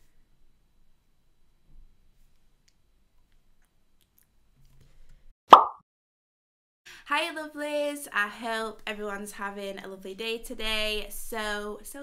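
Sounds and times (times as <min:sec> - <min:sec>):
short pop: 0:05.5 - 0:05.8.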